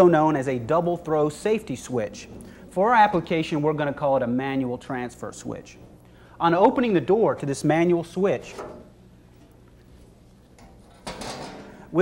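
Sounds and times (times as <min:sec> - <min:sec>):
sheet-metal door clatter: 0:10.9 - 0:11.7.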